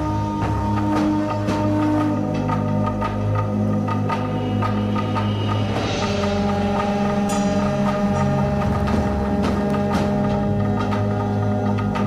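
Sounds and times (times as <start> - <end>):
horn-pipes droning: 0.0 - 12.0.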